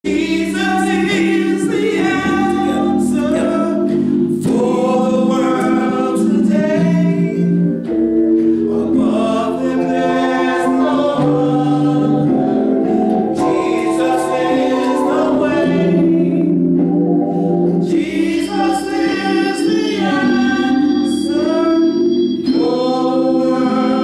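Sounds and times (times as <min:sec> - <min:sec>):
held keyboard chords: 0:00.1 - 0:24.0
women singing gospel: 0:00.1 - 0:24.0.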